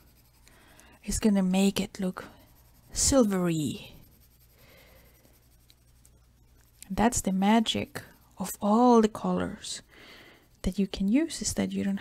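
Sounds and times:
pencil scratching on paper: 0.0 - 9.9.

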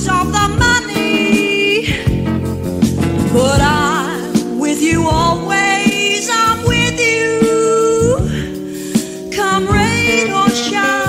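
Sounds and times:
jazz singer with band: 0.0 - 11.0.

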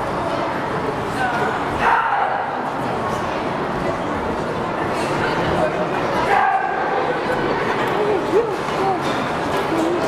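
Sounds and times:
crowd chatter echoing: 0.0 - 10.0.

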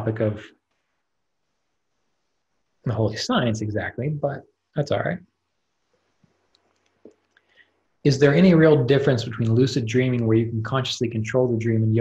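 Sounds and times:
man's voice: 0.0 - 0.5, 2.9 - 5.2, 8.1 - 12.0
faint sharp clicks: 6.5 - 7.6.

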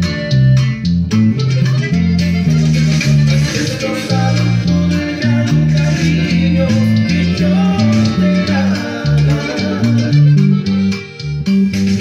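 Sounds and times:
electric bass line: 0.0 - 12.0.

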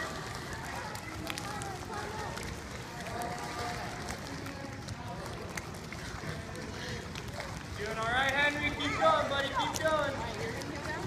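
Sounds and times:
chatter of children and adults: 0.0 - 11.0
small clicks or splashes: 0.0 - 11.0.

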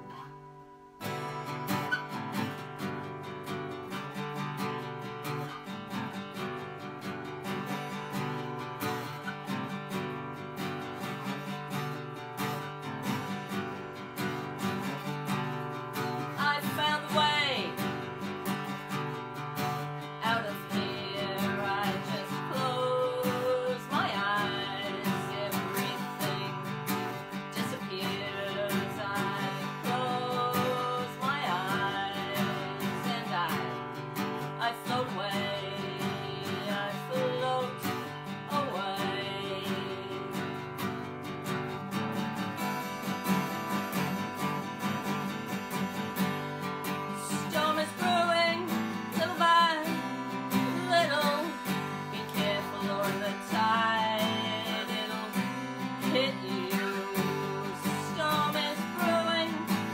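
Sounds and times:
strummed acoustic guitar: 0.0 - 59.9
woman singing: 12.4 - 41.8, 46.2 - 59.9.

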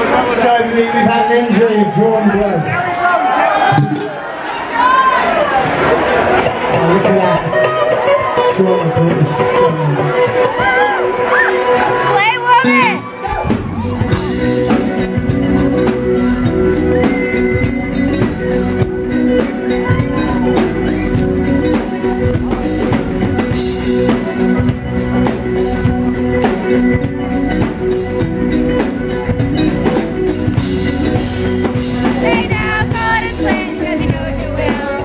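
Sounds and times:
electric guitars playing chords: 5.4 - 35.0
driving drum beat: 11.8 - 35.0.

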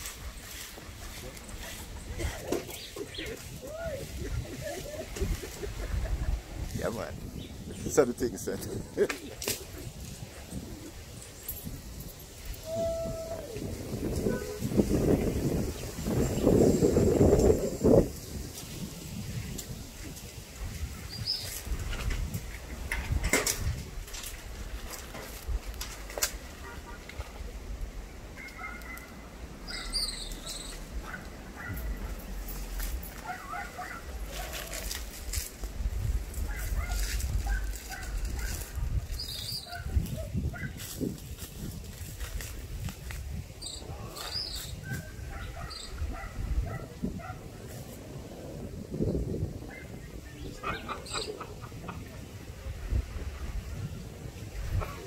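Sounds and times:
palm fronds rustling: 0.0 - 45.7
wind on microphone: 0.0 - 55.0
high bird chirps: 29.7 - 30.9.

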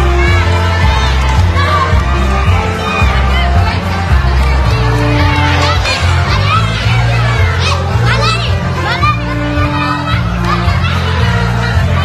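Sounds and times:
children shouting and squealing: 0.0 - 12.0.

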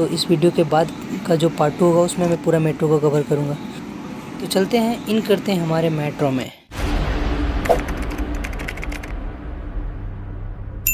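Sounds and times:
low steady hum: 0.0 - 10.9
keyboard typing clicks: 7.7 - 9.1.

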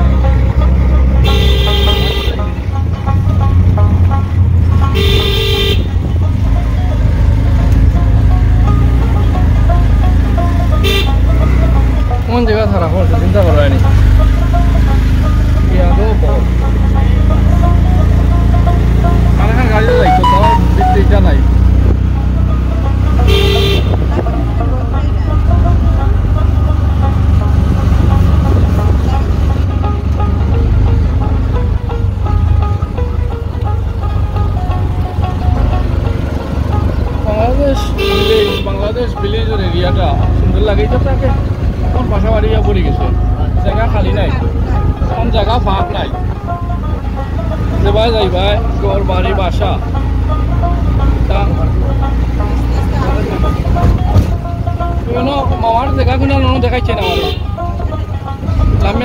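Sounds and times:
engine and road rumble: 0.0 - 59.0.

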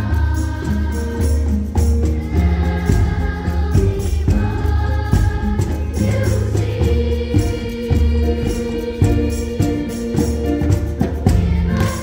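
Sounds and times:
children's choir singing: 0.0 - 12.0
low steady-beat accompaniment: 0.0 - 12.0.

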